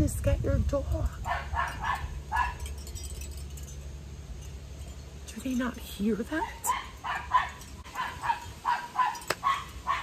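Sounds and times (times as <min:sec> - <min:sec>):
low background hum: 0:00.0 - 0:10.0
small dog yipping: 0:06.4 - 0:10.0.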